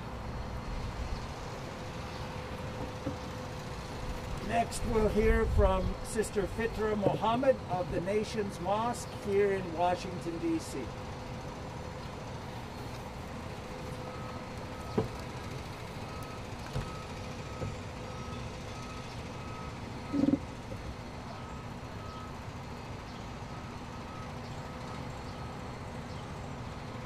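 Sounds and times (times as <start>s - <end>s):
street traffic hum: 0.0s - 27.0s
reversing alarm beeping: 13.9s - 25.7s.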